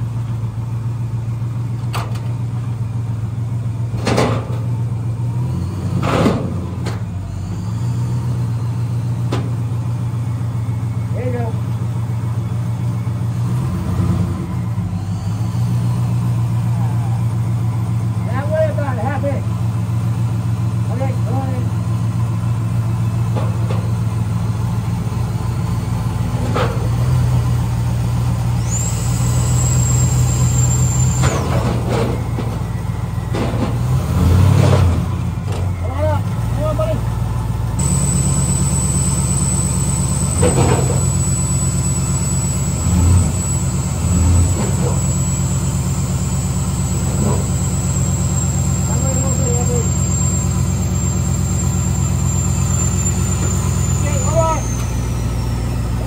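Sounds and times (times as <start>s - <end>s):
car engine idling: 0.0s - 5.4s, 6.3s - 13.4s, 14.4s - 34.0s, 35.1s - 56.0s
thin high whine: 37.8s - 43.9s.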